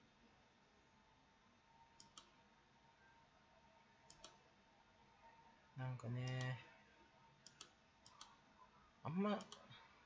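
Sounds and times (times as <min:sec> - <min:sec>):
faint computer clicks: 0:02.0 - 0:02.4, 0:04.1 - 0:04.4, 0:07.4 - 0:08.4.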